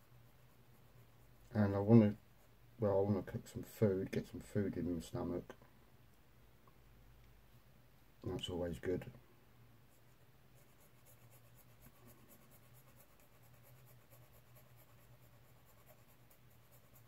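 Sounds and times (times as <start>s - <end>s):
faint low hum: 0.0s - 17.0s.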